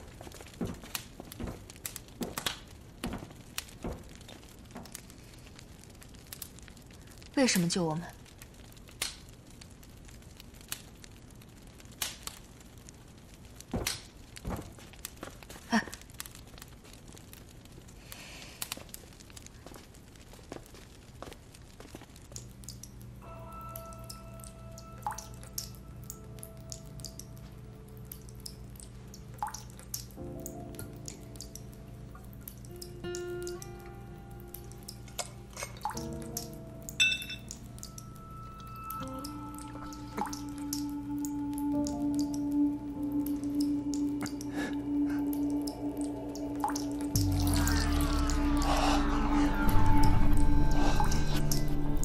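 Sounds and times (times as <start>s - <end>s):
water dripping: 0.0s - 52.0s
slow music with held notes: 22.3s - 52.0s.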